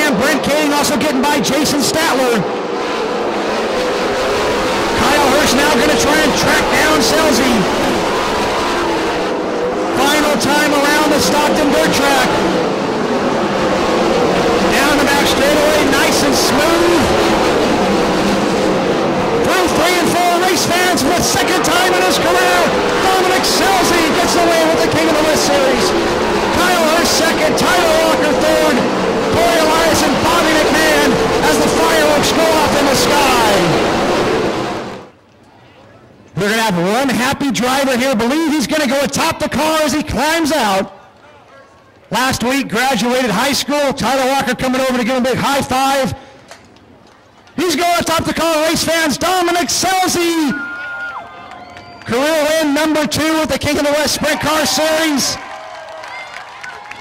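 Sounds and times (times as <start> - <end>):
race car engines at high revs: 0.0 - 35.2, 51.6 - 57.0.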